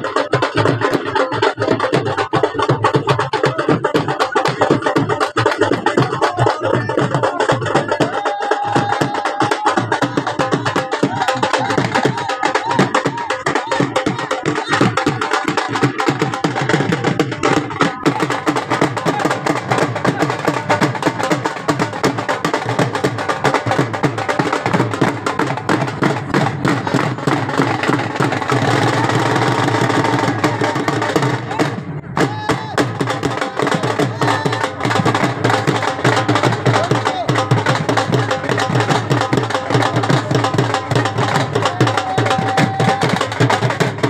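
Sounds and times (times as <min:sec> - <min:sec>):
dhol drums beating fast rhythm: 0:00.0 - 0:44.0.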